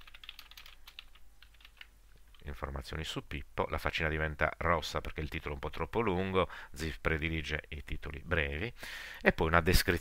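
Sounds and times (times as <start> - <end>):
computer keyboard typing: 0.0 - 2.5.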